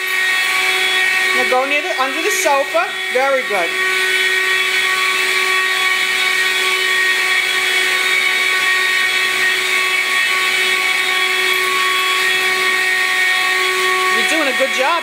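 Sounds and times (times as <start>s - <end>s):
vacuum cleaner running: 0.0s - 15.0s.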